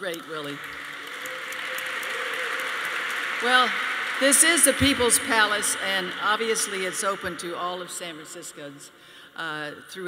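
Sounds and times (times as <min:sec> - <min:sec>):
audience applause: 0:00.0 - 0:07.9.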